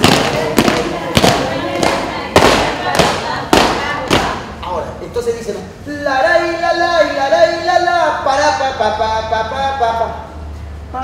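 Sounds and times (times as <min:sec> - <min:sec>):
sharp cracking strikes: 0:00.0 - 0:04.5.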